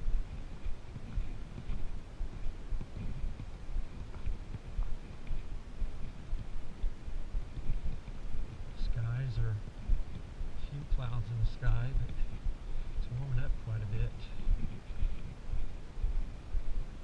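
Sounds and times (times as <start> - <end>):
footsteps on leafy dirt trail: 0.0 - 17.0
wind rumble on microphone: 0.0 - 17.0.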